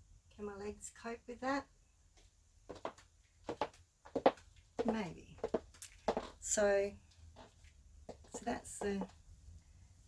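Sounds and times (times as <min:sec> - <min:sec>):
footsteps on wooden floor: 0:02.7 - 0:06.4, 0:07.4 - 0:09.1.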